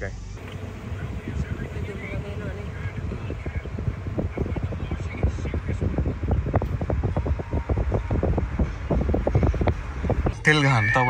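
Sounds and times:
car wind and road noise: 0:00.0 - 0:11.0.

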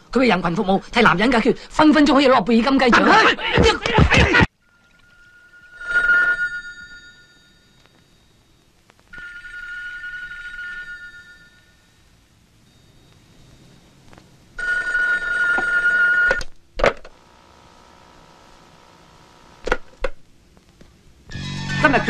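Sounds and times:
telephone bell ringing: 0:04.7 - 0:16.4.

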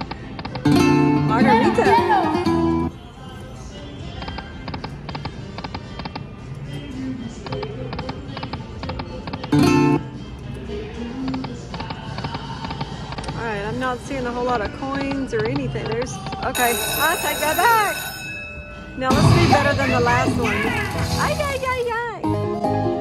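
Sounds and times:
spanish guitar style music: 0:00.3 - 0:02.9, 0:09.2 - 0:10.2, 0:19.0 - 0:23.0.

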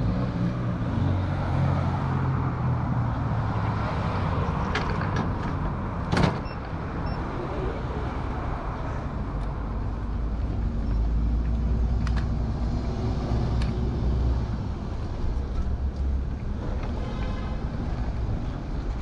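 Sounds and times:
cars passing: 0:00.0 - 0:19.0
bus engine rumble: 0:01.5 - 0:19.0.

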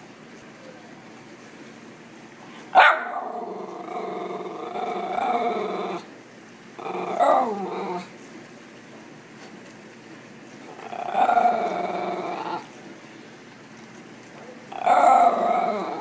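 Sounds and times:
dog barking: 0:02.8 - 0:03.4
dog growling vocalisation: 0:03.0 - 0:06.1, 0:06.8 - 0:08.1, 0:10.7 - 0:12.7, 0:14.7 - 0:16.0.

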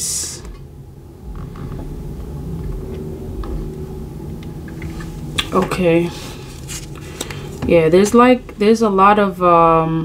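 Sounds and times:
faint hum: 0:00.0 - 0:10.0
low steady rumble: 0:00.0 - 0:10.0.

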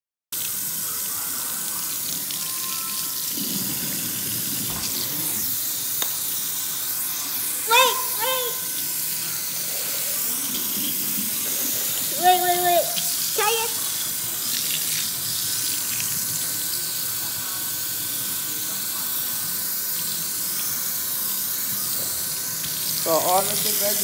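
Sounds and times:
faucet running into sink: 0:00.4 - 0:24.0.

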